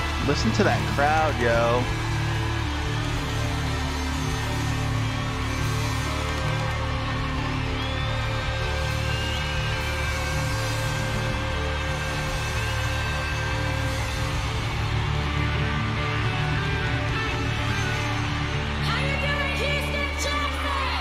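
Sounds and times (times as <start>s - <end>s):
concert crowd cheering: 0.0s - 21.0s.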